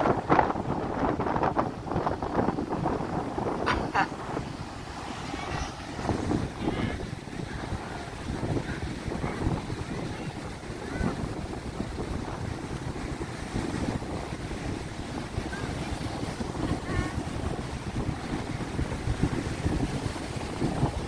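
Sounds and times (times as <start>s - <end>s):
surf breaking on beach: 0.0s - 21.0s
wind buffeting microphone: 0.0s - 21.0s.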